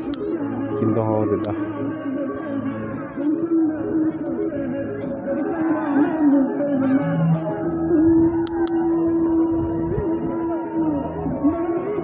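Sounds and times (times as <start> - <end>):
music with long held note: 0.0 - 12.0.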